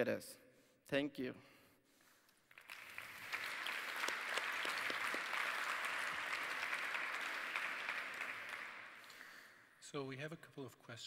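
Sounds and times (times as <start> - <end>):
audience applauding: 2.5 - 9.5.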